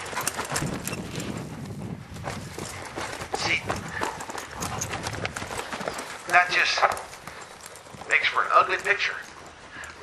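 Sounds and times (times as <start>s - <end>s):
horse hoofbeats on dirt: 0.0s - 10.0s.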